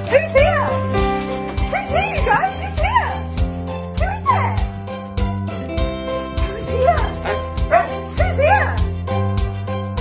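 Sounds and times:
background music with steady beat: 0:00.0 - 0:10.0
dogs yipping and whining: 0:07.1 - 0:08.1.

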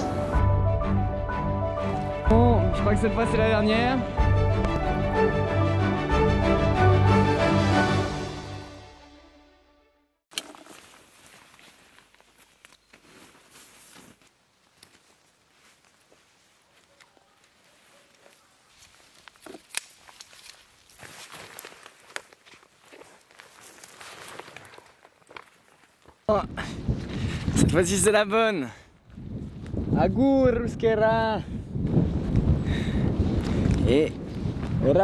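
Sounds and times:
music track: 0:00.0 - 0:10.2
footsteps on leaves: 0:10.3 - 0:26.2.

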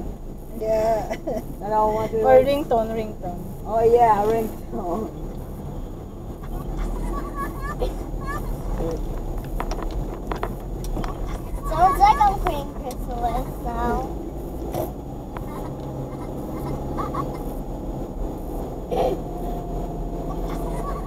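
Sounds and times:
car engine and road hum: 0:00.0 - 0:21.0.

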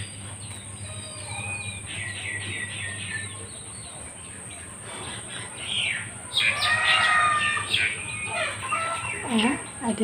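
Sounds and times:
birds chirping and calling: 0:00.0 - 0:10.0.

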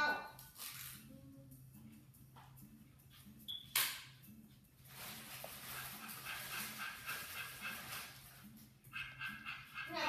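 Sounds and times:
cartoon dog voice: 0:00.0 - 0:00.4, 0:09.8 - 0:10.0
repetitive background music: 0:00.0 - 0:10.0.

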